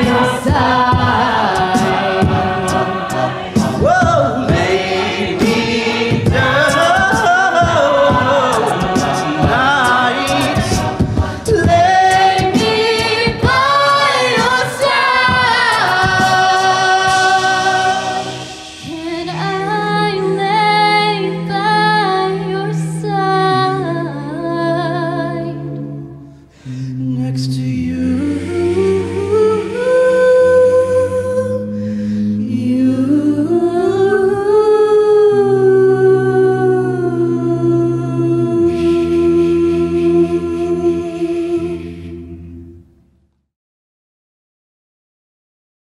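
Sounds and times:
choir singing in harmony: 0:00.0 - 0:26.0, 0:26.6 - 0:42.8
sung bass note: 0:26.8 - 0:31.8.

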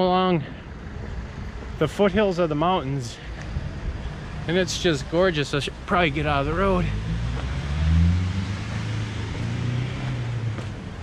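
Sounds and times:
car driving past: 0:06.2 - 0:11.0.

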